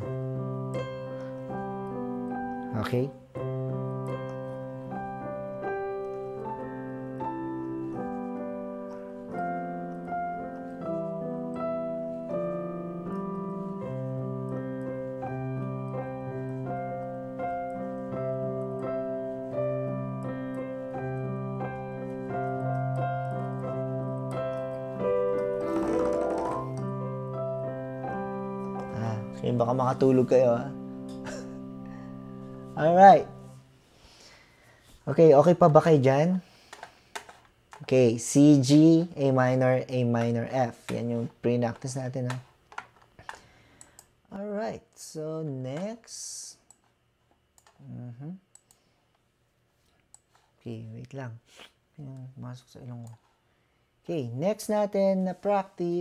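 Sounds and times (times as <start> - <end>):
slow piano melody with chords: 0.0 - 33.8.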